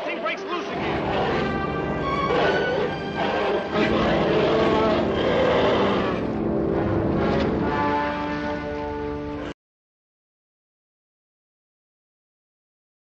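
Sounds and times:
orchestral film music: 0:00.0 - 0:09.6.

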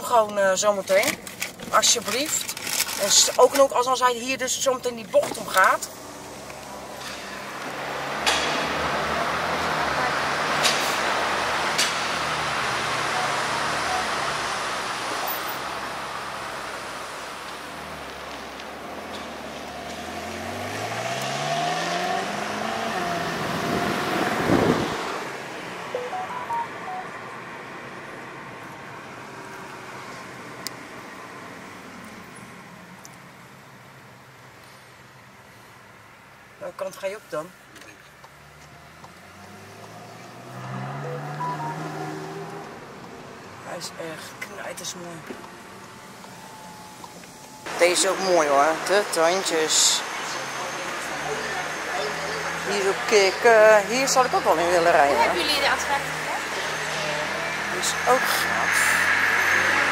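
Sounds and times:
car engine accelerating hard: 0:06.0 - 0:25.9, 0:38.4 - 0:43.6, 0:45.6 - 0:59.9.

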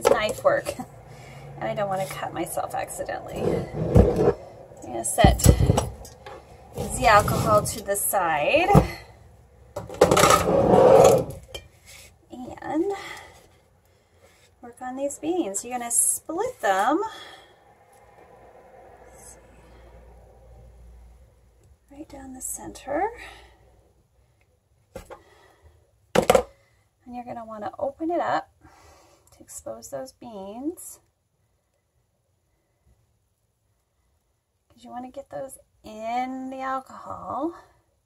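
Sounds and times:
bottle scraping on countertop: 0:03.3 - 0:04.4, 0:06.8 - 0:07.9, 0:10.1 - 0:12.1.

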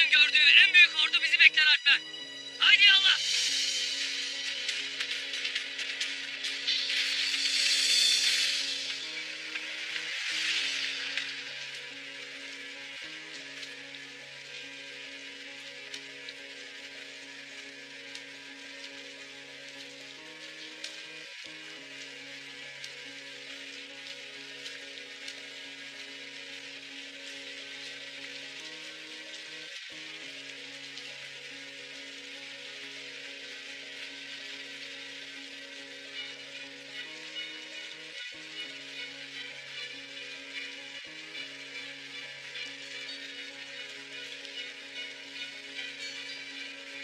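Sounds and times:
crackling hiss: 0:00.0 - 0:47.0.

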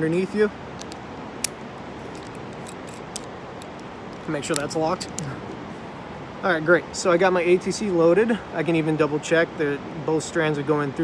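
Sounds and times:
steady background hiss: 0:00.0 - 0:11.0
carabiner and belay device clicking: 0:00.7 - 0:05.3.

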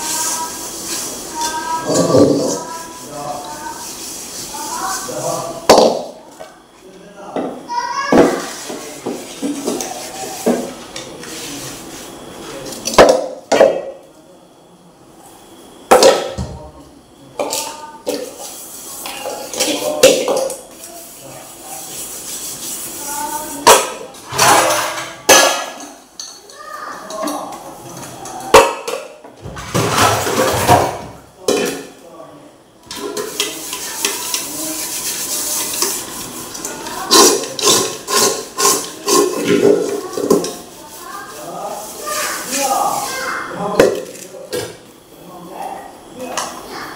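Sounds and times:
metal pots clattering: 0:28.5 - 0:31.8, 0:36.9 - 0:40.7
water running: 0:32.8 - 0:44.9.

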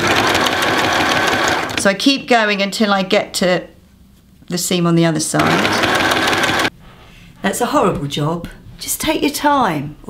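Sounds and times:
electric sewing machine stitching: 0:00.0 - 0:01.9, 0:05.4 - 0:06.7.

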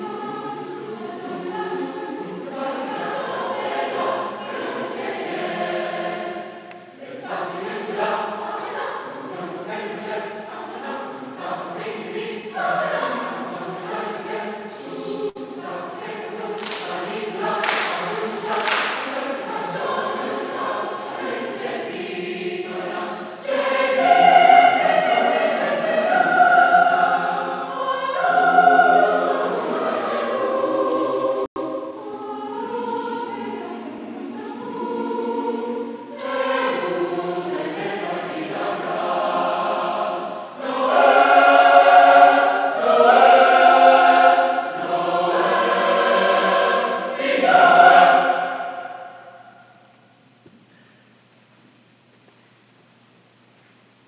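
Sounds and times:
large choir singing: 0:00.0 - 0:49.9.

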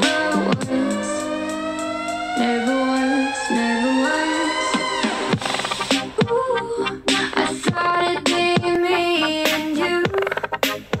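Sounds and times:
rising tone: 0:00.0 - 0:10.2
hip-hop electronic track on speaker: 0:00.0 - 0:11.0.

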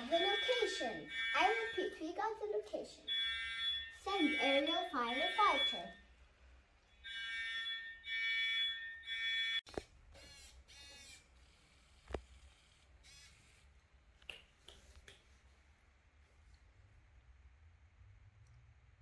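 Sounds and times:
fire alarm long beeps: 0:00.0 - 0:02.4, 0:03.0 - 0:06.1, 0:07.0 - 0:09.7.

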